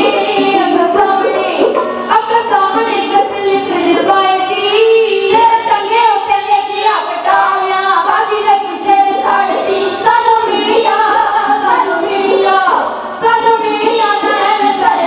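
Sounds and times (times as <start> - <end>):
voices singing a ballad: 0.0 - 15.0.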